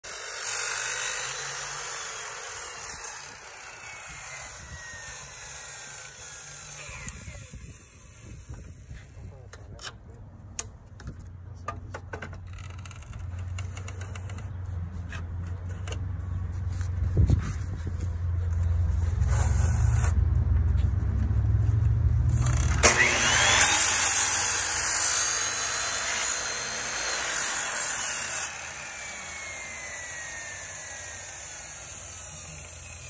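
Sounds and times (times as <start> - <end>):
miter saw cutting foam: 0.0 - 9.4, 19.0 - 20.2, 22.3 - 33.0
saw motor spinning down: 0.1 - 8.9, 22.3 - 33.0.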